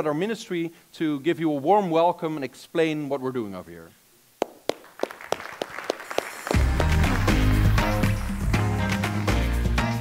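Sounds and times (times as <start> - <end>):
audience applause: 4.7 - 8.3
walk-on music with strong bass: 6.5 - 10.0.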